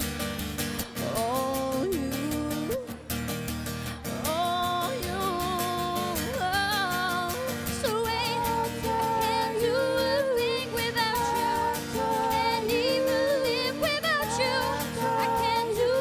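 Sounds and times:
strummed acoustic guitar: 0.0s - 16.0s
two women singing: 1.0s - 3.1s, 4.1s - 16.0s.

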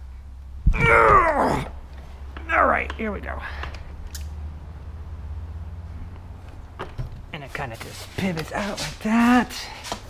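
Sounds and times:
low steady rumble: 0.0s - 7.4s.

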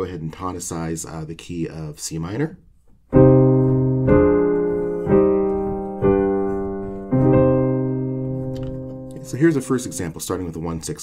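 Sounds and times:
piano block chords: 3.1s - 10.2s.

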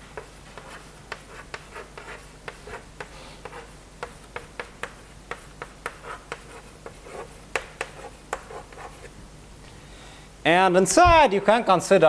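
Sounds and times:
chalk writing on blackboard: 0.0s - 9.1s.

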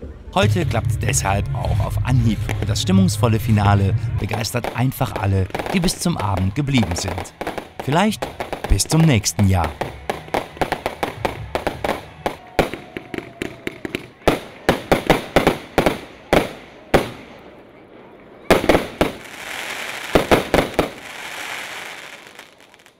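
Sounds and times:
fireworks bangs: 3.6s - 22.9s
fireworks crackling: 4.0s - 17.6s, 18.4s - 22.9s.

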